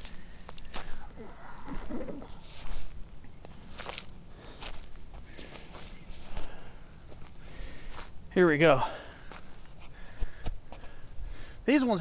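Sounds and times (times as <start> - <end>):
footsteps on pine needles and twigs: 0.0 - 1.2, 1.8 - 8.2, 9.1 - 10.9.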